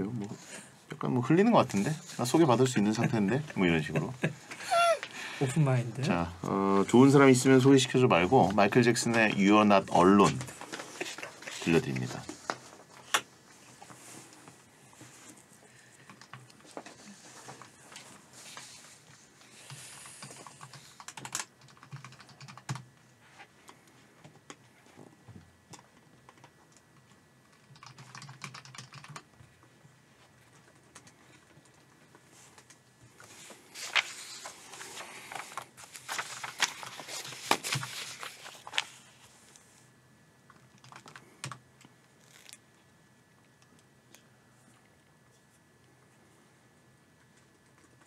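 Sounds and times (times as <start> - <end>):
computer keyboard typing: 19.6 - 22.9, 25.7 - 29.4, 40.5 - 41.6
paper sheets rustling: 33.2 - 39.3.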